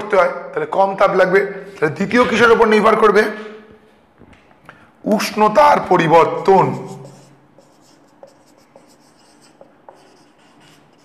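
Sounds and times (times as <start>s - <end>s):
marker pen writing on whiteboard: 5.1s - 11.0s.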